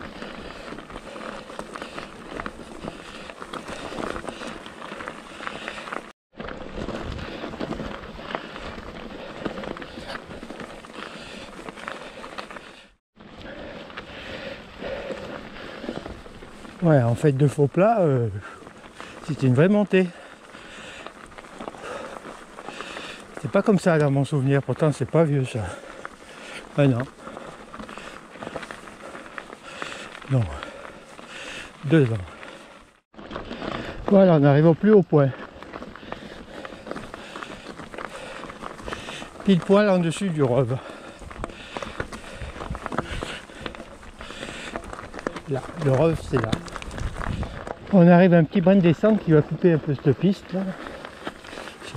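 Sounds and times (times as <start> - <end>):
bike rattling: 0.0 - 51.9
bike tyres rolling on gravel: 0.0 - 51.9
stones clicking and knocking: 41.2 - 48.0.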